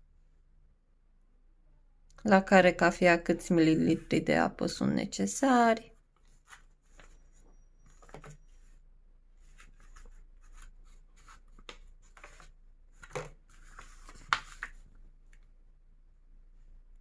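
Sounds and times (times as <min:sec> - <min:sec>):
paper pages rustling and turning: 0:06.1 - 0:08.8, 0:09.4 - 0:15.5.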